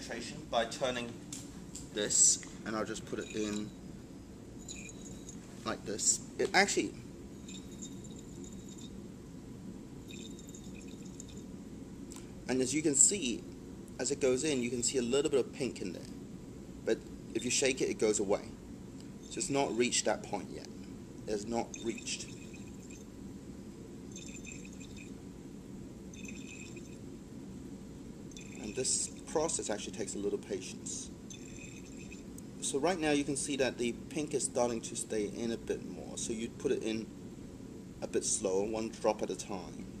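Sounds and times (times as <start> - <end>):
low background hum: 0.0 - 40.0
liquid swishing in glass flask: 7.4 - 9.0, 10.1 - 11.4, 21.7 - 23.0, 24.1 - 25.1, 26.2 - 27.0, 28.4 - 28.8, 31.3 - 32.2
liquid sloshing in a glass flask: 26.2 - 27.0, 28.3 - 28.7, 31.3 - 32.2.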